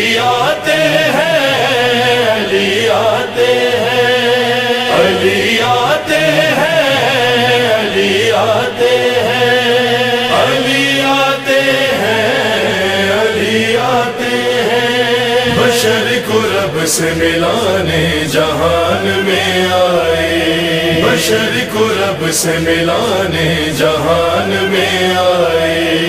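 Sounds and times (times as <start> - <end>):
voices chanting held notes: 0.0 - 26.0.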